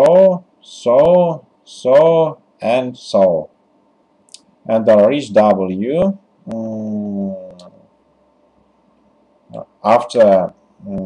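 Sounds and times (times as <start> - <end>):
man speaking: 0.0 - 3.5, 4.7 - 7.8, 9.5 - 11.0
faint hiss: 0.0 - 11.0.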